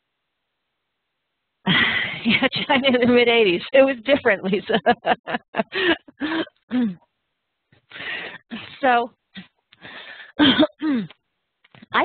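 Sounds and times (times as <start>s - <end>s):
woman laughing breathily: 1.7s - 2.8s, 4.7s - 7.0s, 7.9s - 8.8s.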